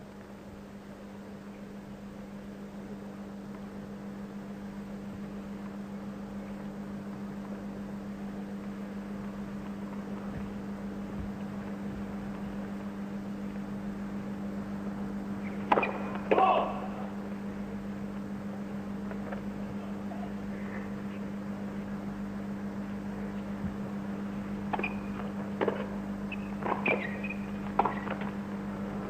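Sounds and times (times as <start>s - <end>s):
steady low hum: 0.0s - 29.0s
tennis ball being struck: 15.7s - 16.4s.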